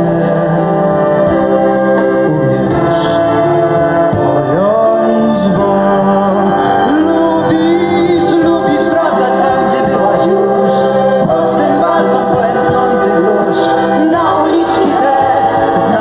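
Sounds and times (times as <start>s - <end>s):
drums: 0.0s - 16.0s
keyboard: 0.0s - 16.0s
live band playing: 0.0s - 16.0s
man and women singing together: 2.3s - 16.0s.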